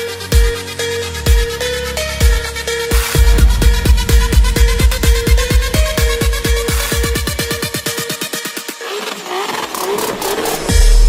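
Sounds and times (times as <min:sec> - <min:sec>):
electronic dance music: 0:00.0 - 0:10.9
rally car engine revving: 0:08.6 - 0:10.7.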